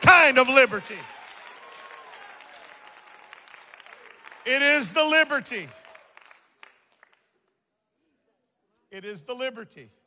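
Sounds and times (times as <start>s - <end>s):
congregation applauding softly: 0.0s - 7.5s.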